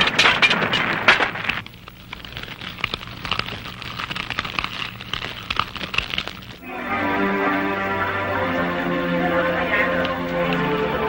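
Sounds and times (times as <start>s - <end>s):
fire crackling and popping: 0.0s - 6.6s
loud crack: 0.0s - 6.6s
music: 6.6s - 11.0s.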